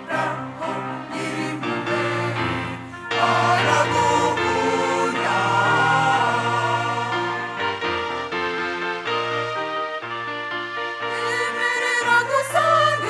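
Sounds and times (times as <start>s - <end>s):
choir singing gospel: 0.0s - 10.0s, 11.1s - 13.0s.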